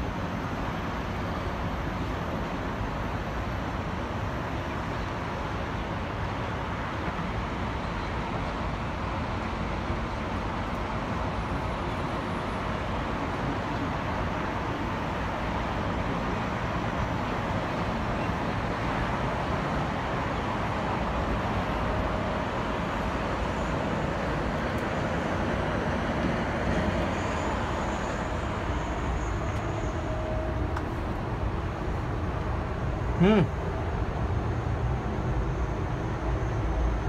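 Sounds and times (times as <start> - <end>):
cable car cabin rumble and hiss: 0.0 - 37.0.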